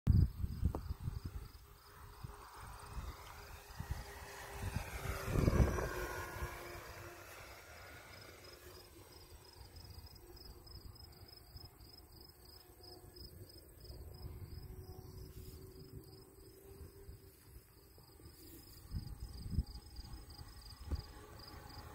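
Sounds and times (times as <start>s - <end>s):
model airplane motor passing: 0.1s - 21.9s
crickets chirping: 8.0s - 21.9s.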